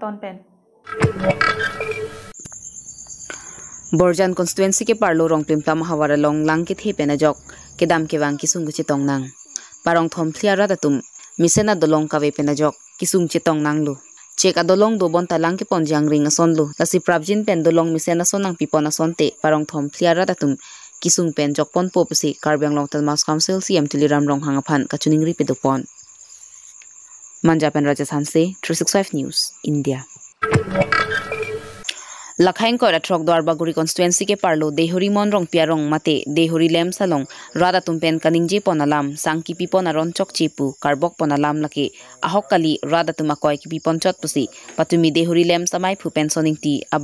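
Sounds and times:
high-pitched whine: 30.4 - 31.9
person talking: 32.4 - 46.8.

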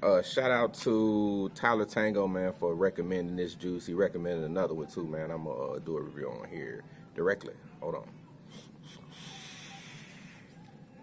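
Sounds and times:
vape airflow hiss: 8.5 - 10.6.

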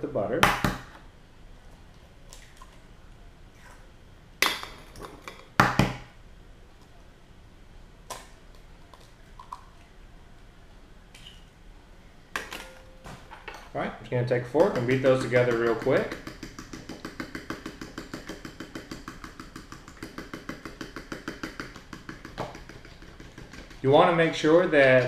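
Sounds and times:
eggs knocking on plastic bowl: 14.6 - 24.2.

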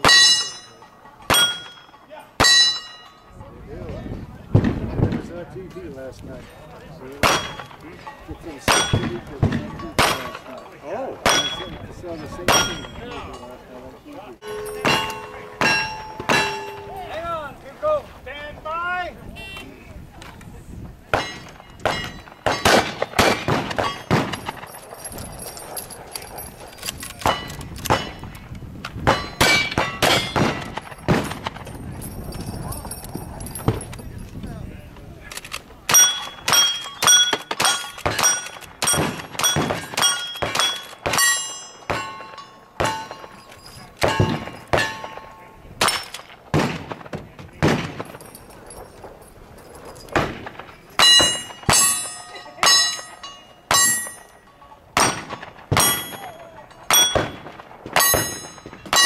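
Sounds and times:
steel targets ringing: 0.0 - 3.6, 7.2 - 13.6, 14.4 - 17.3, 21.2 - 25.0, 29.1 - 31.4, 35.9 - 46.3, 50.9 - 59.0
gunshots: 21.1 - 24.7, 29.0 - 31.7, 35.9 - 43.3, 44.0 - 48.2, 50.1 - 51.9, 55.0 - 59.0.

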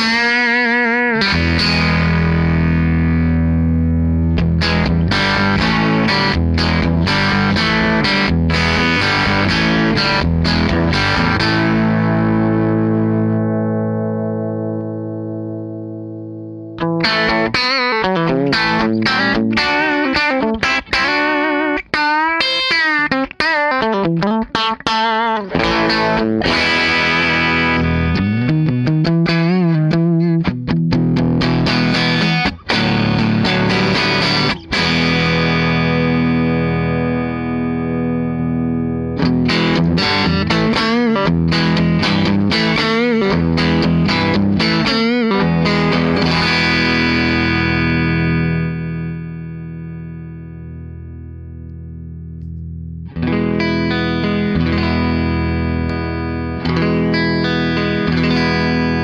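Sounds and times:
overdriven electric guitar: 0.0 - 59.0.

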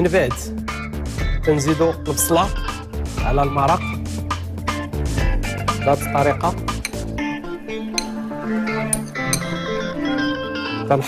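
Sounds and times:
background music with held notes: 0.0 - 11.0
plucked-string instrument: 6.3 - 10.7.

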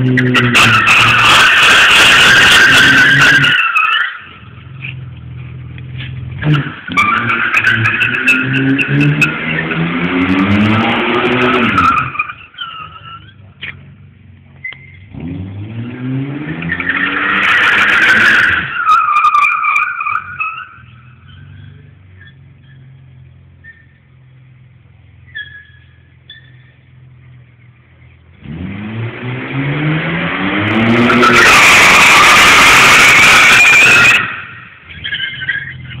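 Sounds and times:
tyres squealing: 0.0 - 5.1, 5.9 - 9.8, 10.4 - 13.9, 25.2 - 26.8, 30.8 - 36.0
car engine revving: 0.0 - 36.0
car engine idling: 3.1 - 9.7, 10.5 - 15.3, 18.6 - 28.5, 34.2 - 36.0.

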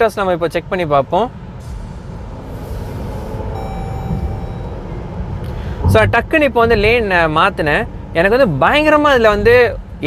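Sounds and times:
car cabin road rumble: 0.0 - 10.0
faint thin high tone: 3.5 - 5.0.

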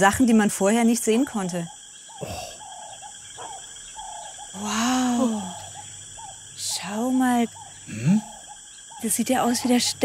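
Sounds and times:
chirping animal calls: 1.5 - 10.0.

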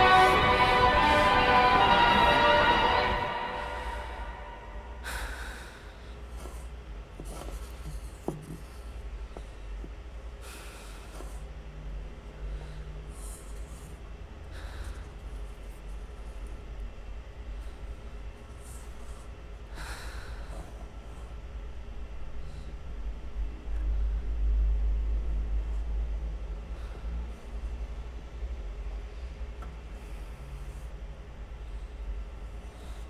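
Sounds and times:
low steady hum: 0.0 - 33.0
person breathing: 2.9 - 11.6, 12.2 - 15.6, 17.6 - 21.6, 22.2 - 24.5, 26.5 - 28.0
sharp intake of breath: 3.2 - 6.7.

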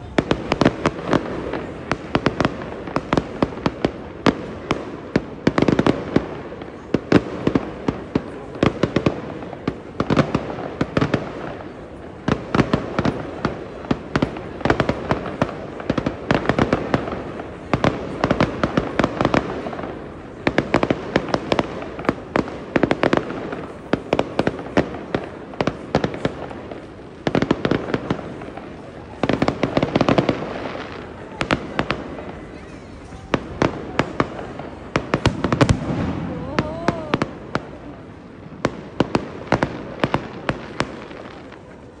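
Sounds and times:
fireworks bangs and crackles: 0.0 - 42.0.

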